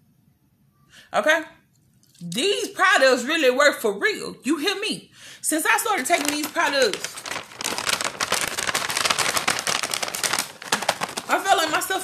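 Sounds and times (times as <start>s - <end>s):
plastic pouch crinkling: 5.8s - 12.0s.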